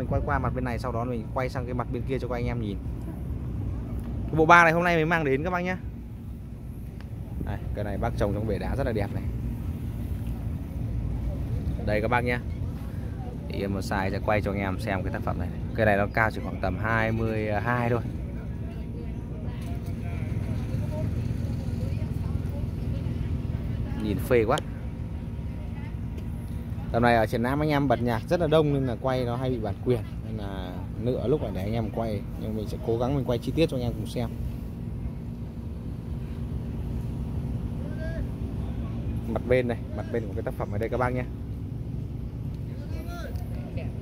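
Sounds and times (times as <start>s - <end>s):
distant voices chattering: 0.0s - 44.0s
steady low rumble: 0.0s - 44.0s.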